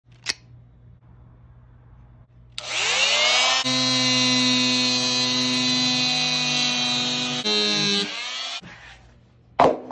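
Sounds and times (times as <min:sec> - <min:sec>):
multi-tool motor whine: 0:02.6 - 0:08.6.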